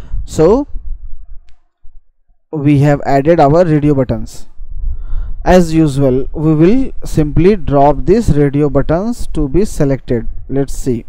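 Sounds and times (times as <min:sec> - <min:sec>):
low rumble: 0:00.0 - 0:10.6
man speaking: 0:00.3 - 0:00.7, 0:02.5 - 0:04.5, 0:05.4 - 0:11.0.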